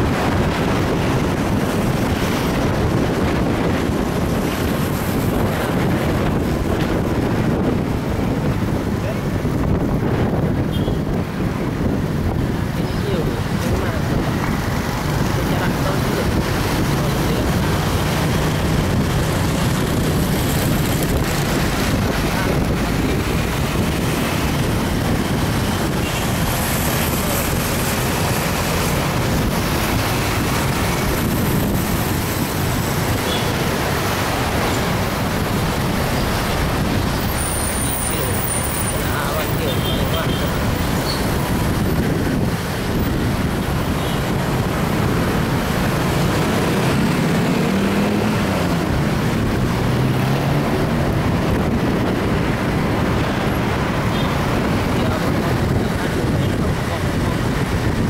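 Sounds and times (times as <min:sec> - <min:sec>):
road and traffic noise: 0:00.0 - 0:58.0.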